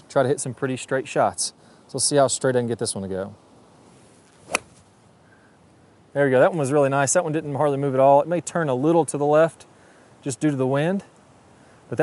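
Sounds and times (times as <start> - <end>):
golf club striking ball: 4.4 - 4.8.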